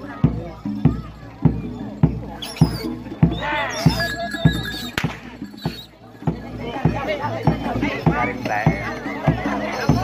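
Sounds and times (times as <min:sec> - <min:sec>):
drum beating: 0:00.0 - 0:10.0.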